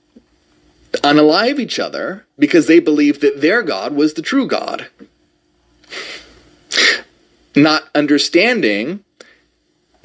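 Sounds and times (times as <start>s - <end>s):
man sneezing: 5.9s - 7.2s.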